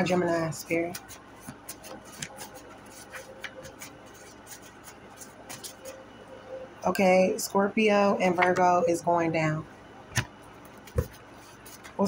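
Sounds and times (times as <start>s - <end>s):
cards being shuffled: 0.9s - 6.0s, 10.2s - 12.0s.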